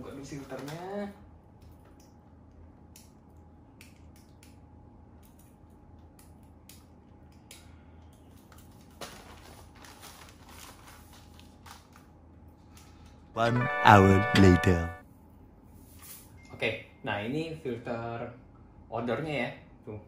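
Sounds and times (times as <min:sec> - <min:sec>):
plastic crinkling: 0:08.3 - 0:12.1.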